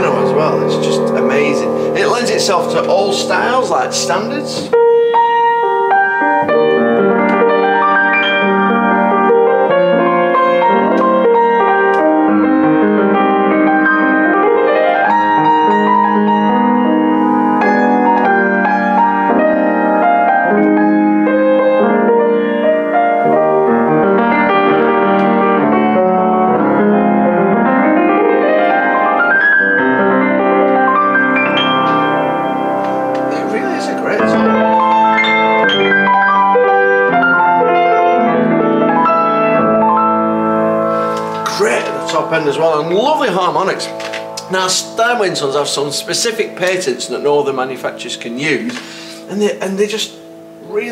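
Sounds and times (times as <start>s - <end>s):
grand piano playing: 0.0s - 50.9s.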